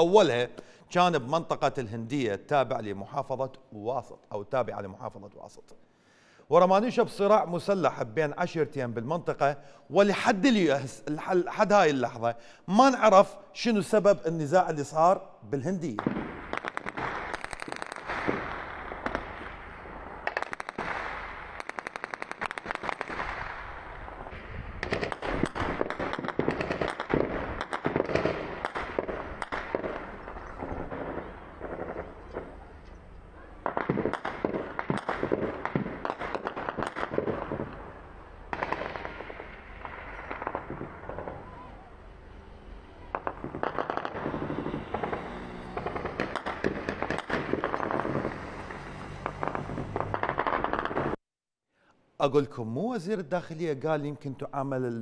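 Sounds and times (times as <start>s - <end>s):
single gunshots: 15.9s - 32.7s, 33.6s - 41.6s, 43.1s - 51.2s
automatic gunfire bursts: 43.1s - 48.6s.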